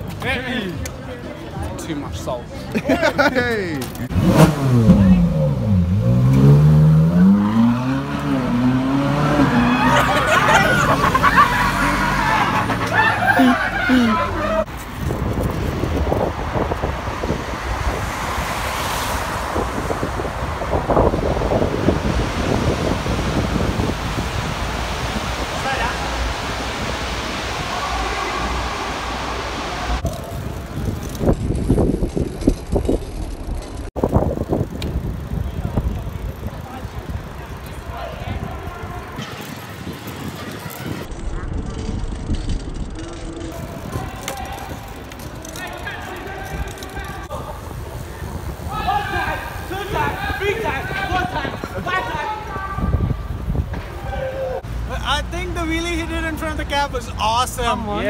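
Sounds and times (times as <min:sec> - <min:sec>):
city traffic: 0:00.0 - 0:58.0
people's voices and shouts: 0:09.2 - 0:14.7, 0:27.5 - 0:30.4, 0:43.0 - 0:54.7
wind rushing over microphone: 0:14.6 - 0:54.7.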